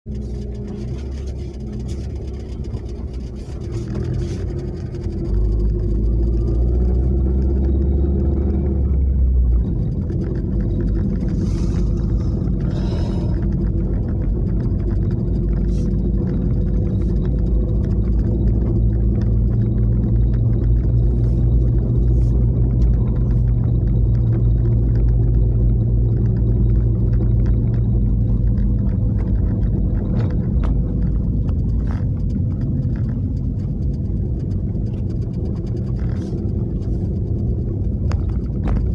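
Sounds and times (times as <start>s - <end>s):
car engine and road noise: 0.0s - 38.9s.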